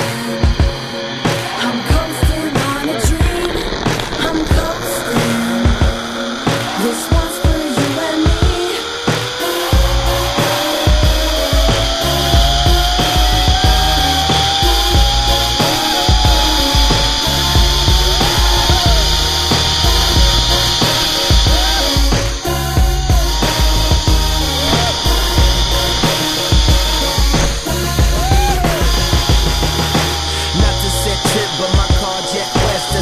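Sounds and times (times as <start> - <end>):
music: 0.0 - 33.0
zipline pulleys whining on cable: 0.0 - 33.0
low rumble: 9.6 - 33.0.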